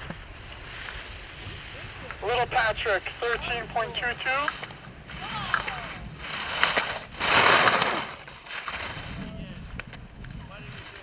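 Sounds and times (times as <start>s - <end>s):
skis scraping on slushy snow: 0.3s - 9.7s, 10.4s - 11.0s.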